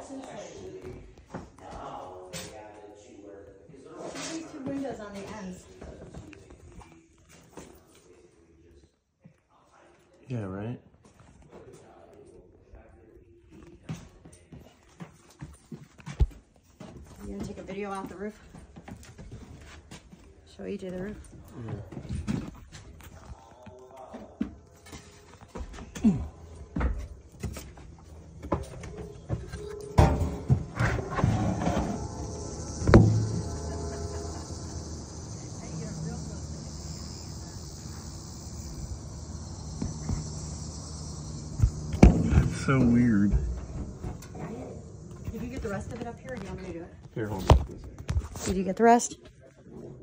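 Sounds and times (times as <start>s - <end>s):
high-pitched insect chorus: 24.8s - 47.4s
low rumble: 27.2s - 47.0s.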